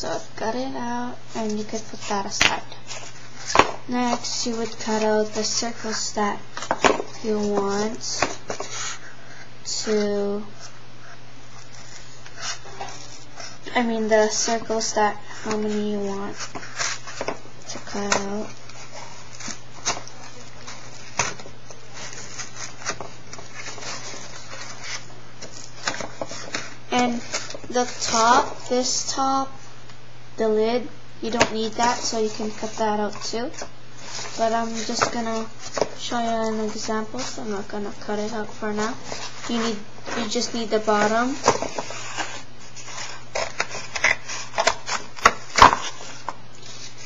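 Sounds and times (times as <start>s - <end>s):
steady low hum: 0.0s - 47.0s
scissors cutting cardboard: 14.3s - 28.6s, 34.1s - 47.0s.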